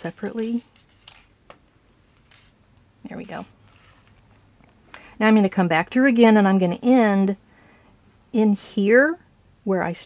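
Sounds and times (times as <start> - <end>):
thread rustling through fabric: 0.0 - 4.4.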